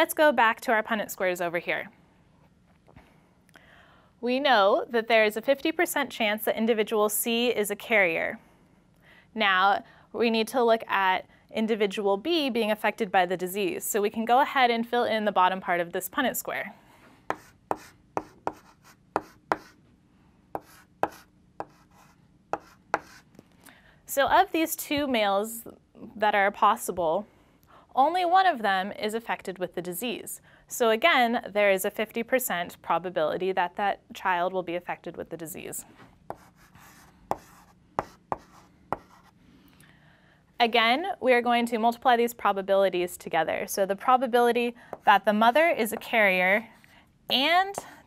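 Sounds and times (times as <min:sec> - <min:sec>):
chalk tapping on blackboard: 0:17.3 - 0:19.8, 0:20.6 - 0:23.2, 0:36.3 - 0:39.4.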